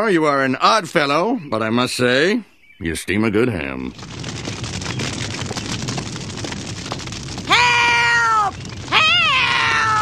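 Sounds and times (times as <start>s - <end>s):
large fire crackling: 3.1s - 10.0s.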